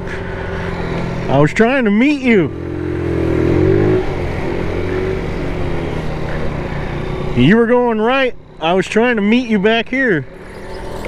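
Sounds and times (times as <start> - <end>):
scooter engine revving: 0.0 - 7.5, 10.3 - 11.0.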